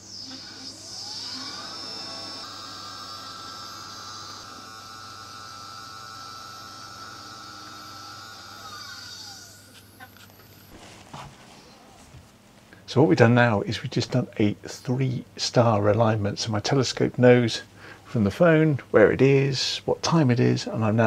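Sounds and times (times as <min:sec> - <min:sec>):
telescope mount motors whining: 0:00.0 - 0:10.9.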